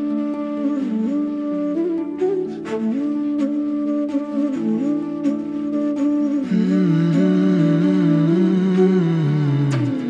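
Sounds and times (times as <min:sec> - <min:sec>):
soft instrumental backing: 0:00.0 - 0:10.0
person humming melody: 0:06.3 - 0:10.0.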